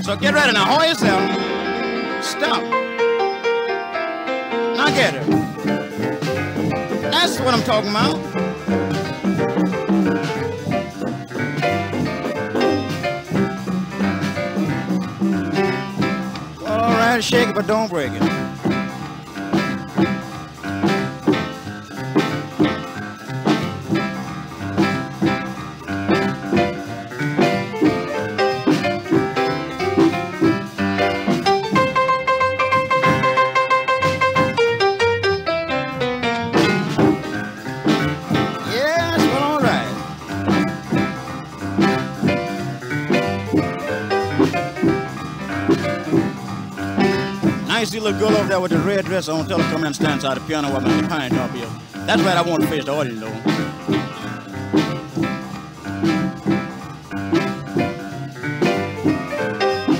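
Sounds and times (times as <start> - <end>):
guitar comping chords: 0.0 - 48.9
boogie-woogie piano: 0.0 - 59.9.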